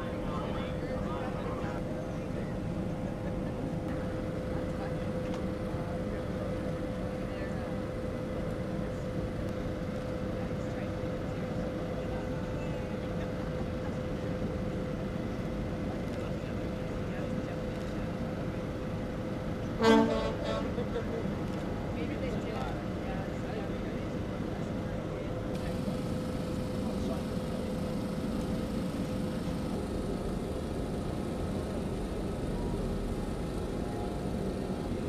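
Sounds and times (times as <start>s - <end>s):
machinery hum: 0.0s - 35.0s
loud horn blast: 19.8s - 20.8s.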